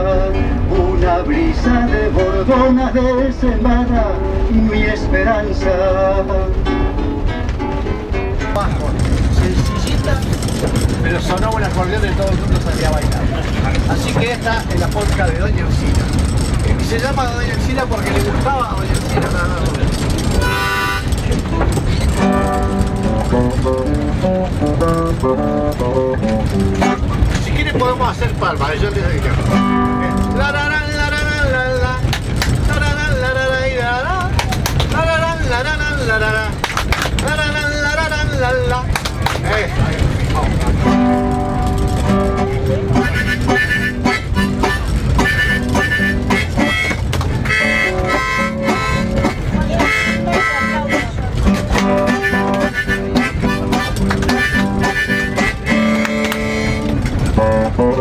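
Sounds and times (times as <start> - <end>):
acoustic guitar: 0.0 - 58.0
train carriage rumbling on rails: 0.0 - 58.0
people talking indistinctly: 8.4 - 23.8, 25.3 - 32.2, 32.8 - 57.9
harmonica folk melody: 20.3 - 21.2, 40.9 - 58.0
hand claps: 34.3 - 35.0, 36.6 - 37.4, 38.9 - 39.6, 46.8 - 47.6, 53.7 - 57.2.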